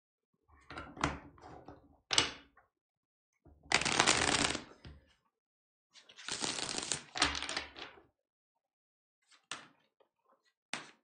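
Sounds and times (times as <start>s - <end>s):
cards shuffled by hand: 3.7s - 4.6s, 6.2s - 7.6s.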